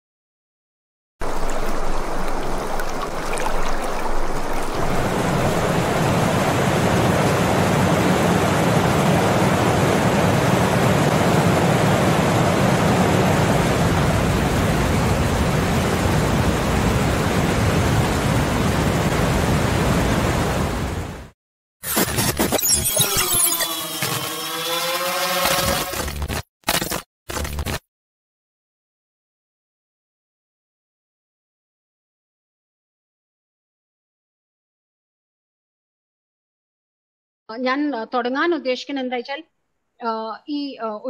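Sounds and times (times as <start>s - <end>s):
loud rushing noise: 4.7s - 19.5s.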